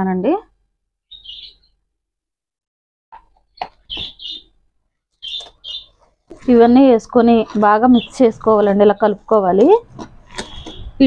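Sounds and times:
small bird chirping: 1.1 - 1.8, 3.4 - 4.5, 5.2 - 6.0, 6.6 - 9.3, 10.3 - 11.0.

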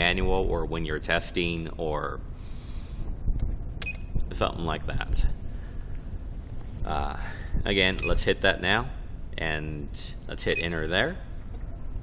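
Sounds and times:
low steady hum: 0.0 - 12.0
short electronic key beep: 3.8 - 4.2, 8.0 - 8.2, 10.5 - 10.8.

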